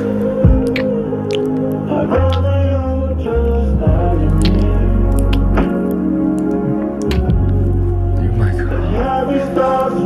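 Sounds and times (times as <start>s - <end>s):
gentle background music: 0.0s - 10.0s
short wet clicks: 0.7s - 2.6s, 4.3s - 7.6s.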